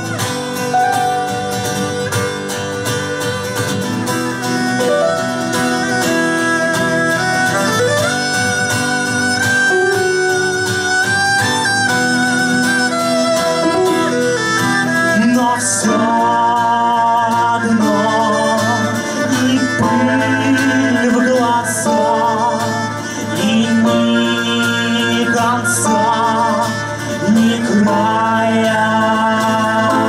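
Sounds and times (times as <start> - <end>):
violin bowed melody: 0.0 - 16.5
strummed acoustic guitars: 0.0 - 30.0.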